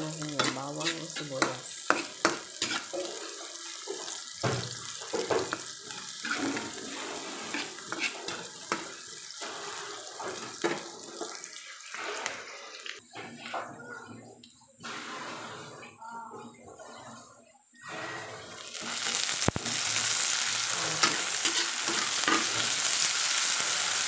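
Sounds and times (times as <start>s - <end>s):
onions sizzling in oil: 0.0s - 13.0s, 17.8s - 24.0s
metal spatula scraping pan: 0.2s - 4.1s, 4.9s - 11.3s, 17.8s - 19.3s, 20.6s - 22.8s.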